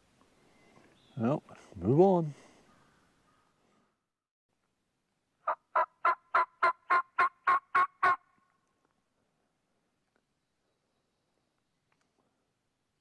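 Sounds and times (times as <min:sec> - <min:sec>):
turkey call hen yelps: 0:05.4 - 0:08.3.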